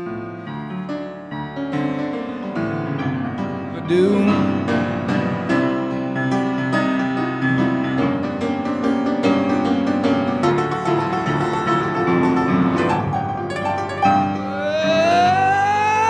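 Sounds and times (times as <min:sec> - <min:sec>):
piano playing blues: 0:00.0 - 0:16.0.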